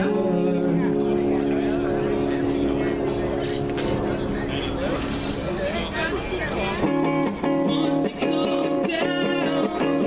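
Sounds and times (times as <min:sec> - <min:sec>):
electric guitar chord ringing: 0:00.0 - 0:04.9.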